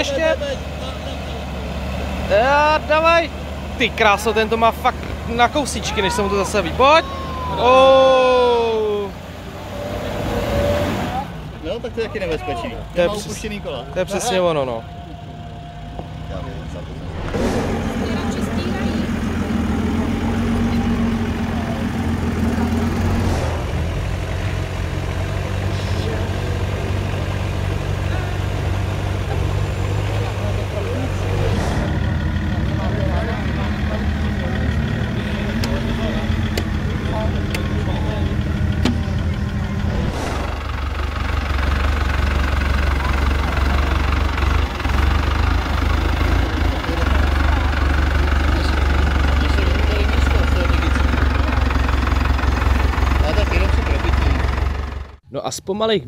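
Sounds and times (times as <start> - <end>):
off-road engines at low revs: 0.0 - 55.2.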